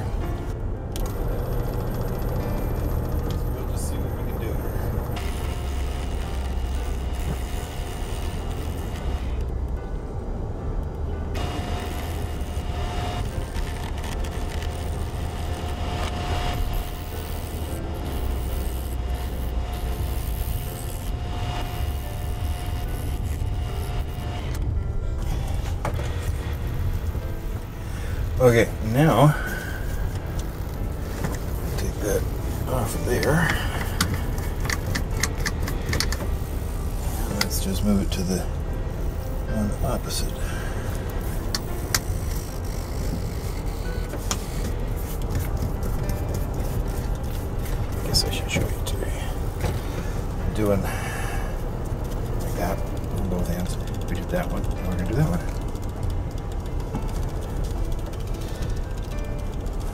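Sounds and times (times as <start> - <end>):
wood lathe cutting wood: 1.0 - 9.9, 11.2 - 59.9.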